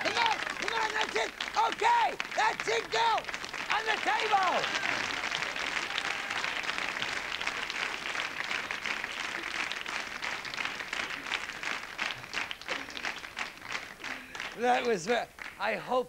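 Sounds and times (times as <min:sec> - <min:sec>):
audience applauding: 0:00.0 - 0:15.9.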